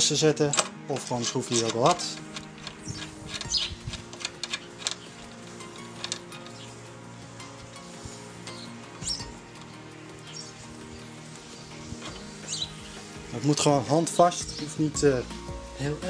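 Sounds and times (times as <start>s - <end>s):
soft background music: 0.0s - 16.0s
screwdriver clicks and scrapes: 0.5s - 5.1s.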